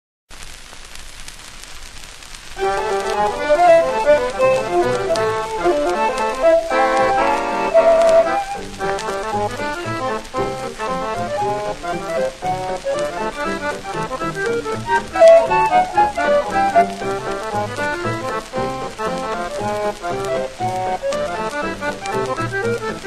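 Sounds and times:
record surface hiss and crackle: 0:00.3 - 0:23.0
swing jazz quartet: 0:02.6 - 0:23.0.

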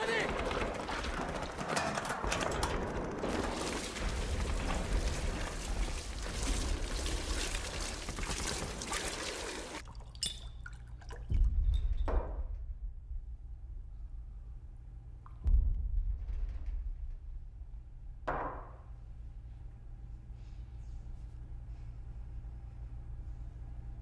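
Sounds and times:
petrol splashing onto ground: 0:03.3 - 0:09.8
heavy low thud: 0:15.4 - 0:18.5.

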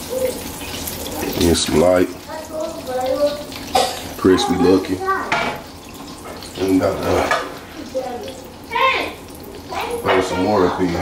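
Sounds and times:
chicken sizzling in hot oil: 0:00.0 - 0:11.0.

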